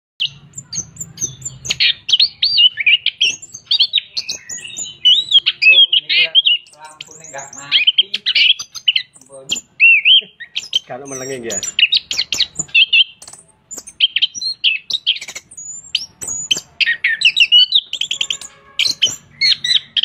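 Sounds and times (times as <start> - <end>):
thrush singing: 0.2 - 20.0.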